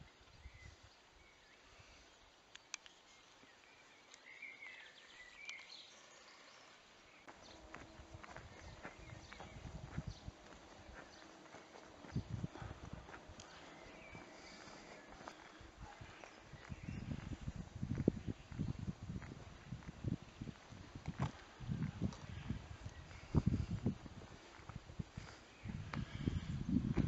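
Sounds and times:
bird chirping: 0:02.6 - 0:17.3
footsteps on paved street: 0:07.2 - 0:27.0.

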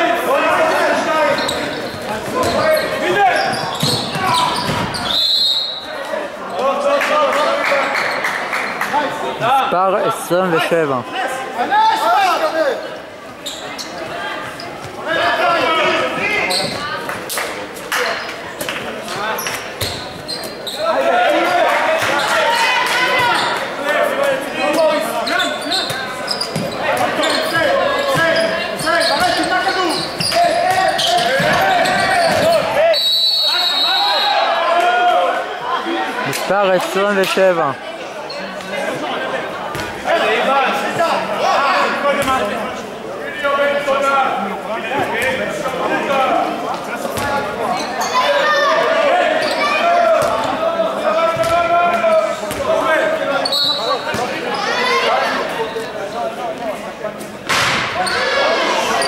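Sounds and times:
referee whistle blowing: 0:05.0 - 0:05.9, 0:32.9 - 0:34.6, 0:53.4 - 0:54.0
people shouting in a hall: 0:11.0 - 0:12.9, 0:20.8 - 0:26.2, 0:26.8 - 0:36.4, 0:47.8 - 0:56.1, 0:57.8 - 0:59.0.

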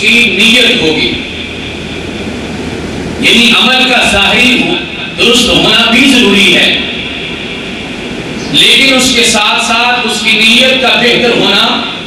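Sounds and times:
room noise through microphone: 0:00.0 - 0:12.0.

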